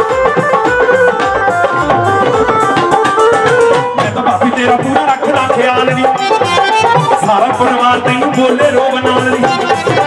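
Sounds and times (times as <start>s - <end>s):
hand drum rhythm: 0.0s - 10.0s
keyboard melody: 0.0s - 10.0s.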